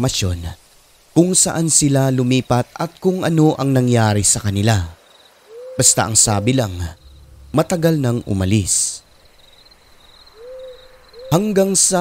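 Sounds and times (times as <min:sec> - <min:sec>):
crickets chirping: 0:00.0 - 0:12.0
owl hoot: 0:05.5 - 0:07.4, 0:09.4 - 0:12.0.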